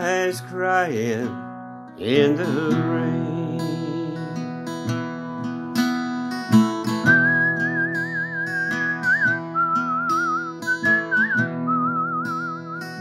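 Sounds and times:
strummed acoustic guitar: 0:00.0 - 0:13.0
man whistling a melody: 0:06.8 - 0:13.0.

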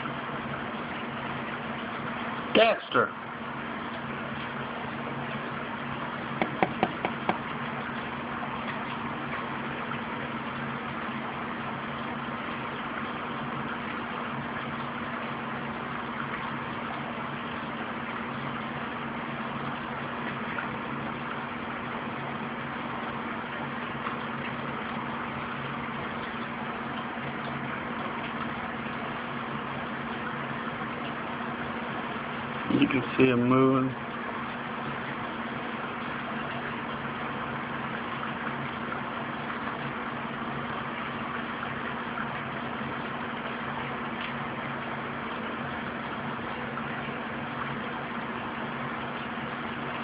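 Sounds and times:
aquarium pump motor humming: 0:00.0 - 0:50.0
light taps: 0:06.4 - 0:07.4.

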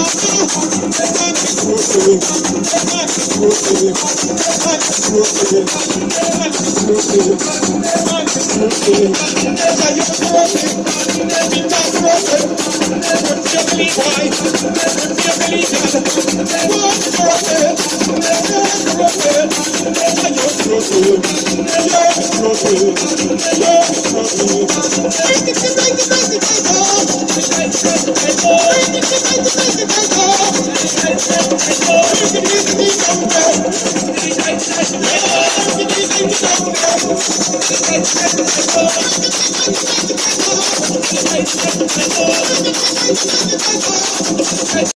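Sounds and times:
hand drums: 0:00.0 - 0:44.9
shaker rattle: 0:00.0 - 0:44.9.

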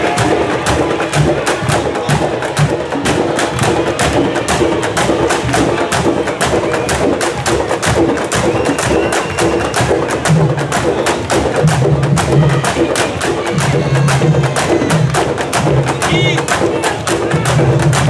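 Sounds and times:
deep pulsing drum notes: 0:00.0 - 0:18.0
drum section playing: 0:00.0 - 0:18.0.

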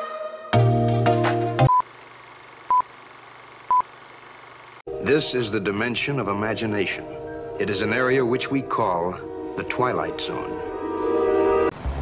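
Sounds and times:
short electronic beeps: 0:01.7 - 0:01.9, 0:02.7 - 0:02.9, 0:03.7 - 0:03.9.

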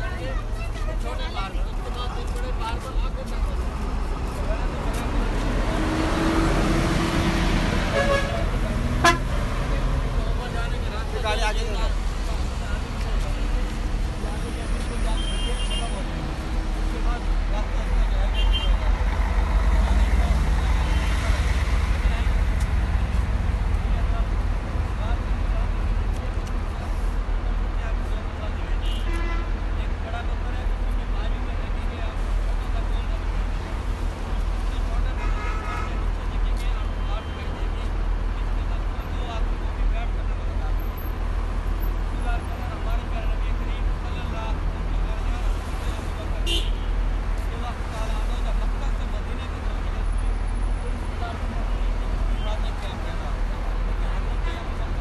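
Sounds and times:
many people talking: 0:00.0 - 0:46.7, 0:47.4 - 0:55.0
traffic and bus engines rumbling: 0:00.0 - 0:55.0
vehicle horn toots: 0:07.9 - 0:08.4, 0:09.0 - 0:09.3, 0:35.2 - 0:36.0.

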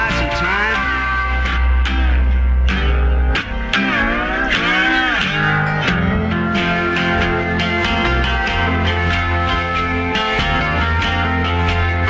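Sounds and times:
guitar sliding in pitch: 0:00.0 - 0:12.0
live rock band music: 0:00.0 - 0:12.0.

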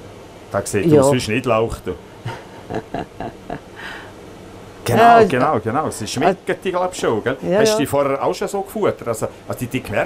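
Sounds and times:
person chuckling softly: 0:02.3 - 0:04.0.

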